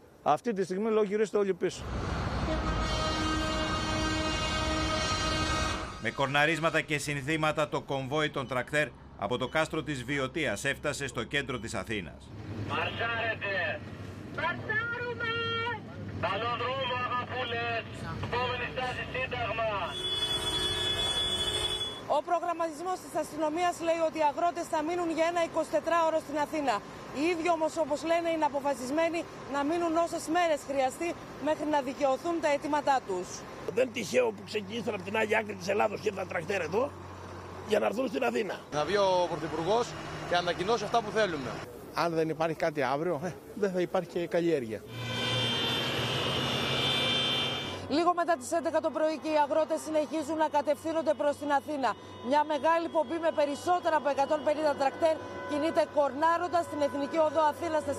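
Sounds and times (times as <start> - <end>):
tractors rumbling: 1.8 - 57.9
tyre and road noise: 1.8 - 57.9
man calling out: 14.4 - 20.0.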